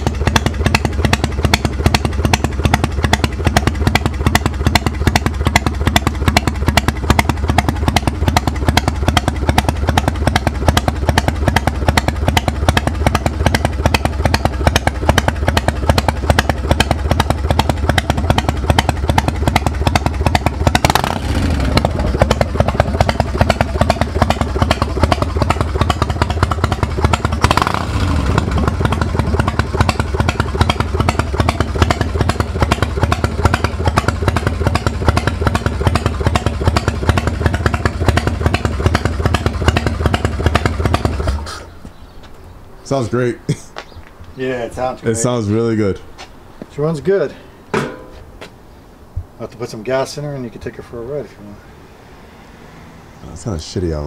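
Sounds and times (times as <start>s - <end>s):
motorcycle engine idling and revving: 0.0s - 43.0s, 50.5s - 54.0s.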